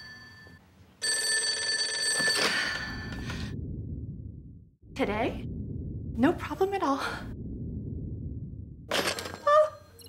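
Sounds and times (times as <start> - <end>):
telephone bell ringing: 0.0 - 3.2.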